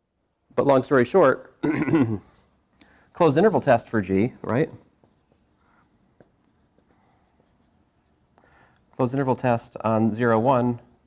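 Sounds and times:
marker writing on whiteboard: 4.4 - 11.0.

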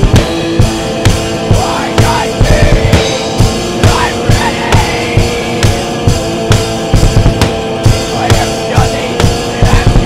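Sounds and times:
bass drum and snare hits: 0.0 - 10.0
metal band music: 0.0 - 10.0.

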